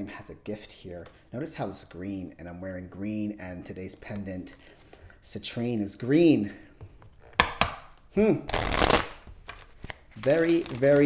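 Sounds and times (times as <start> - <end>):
cards riffle-shuffled: 8.5 - 11.0.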